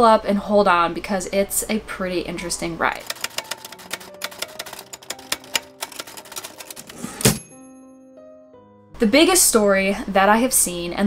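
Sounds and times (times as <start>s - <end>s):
typewriter key strikes: 3.0s - 7.5s
typewriter bell ring: 3.0s - 7.7s.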